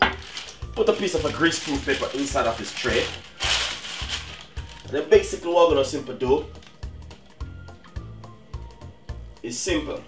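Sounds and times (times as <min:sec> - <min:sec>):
paper crinkling: 0:00.0 - 0:05.0, 0:06.5 - 0:06.9.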